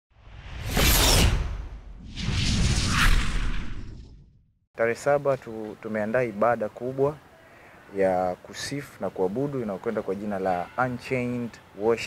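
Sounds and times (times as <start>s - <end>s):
whoosh sound effect: 0.2s - 4.3s.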